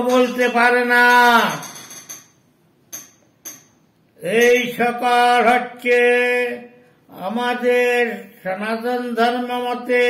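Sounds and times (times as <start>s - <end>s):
man chanting a long vowel: 4.9s - 10.0s.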